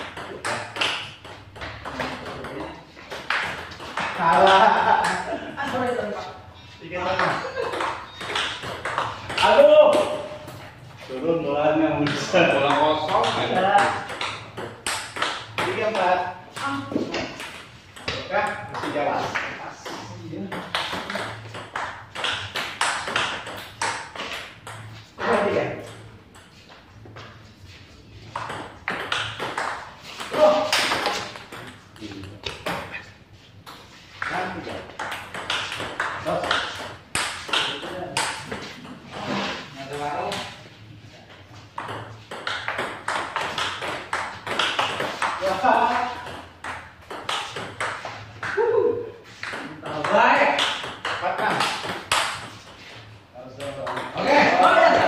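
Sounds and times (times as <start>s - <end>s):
ping-pong ball bouncing on table: 0.0s - 6.2s, 7.1s - 10.4s, 12.0s - 26.6s, 28.3s - 33.0s, 34.2s - 38.6s, 41.7s - 48.7s, 49.4s - 52.8s, 53.6s - 55.0s
ping-pong ball hitting paddles: 0.0s - 6.3s, 7.0s - 10.6s, 11.9s - 26.8s, 28.3s - 39.3s, 41.6s - 55.0s.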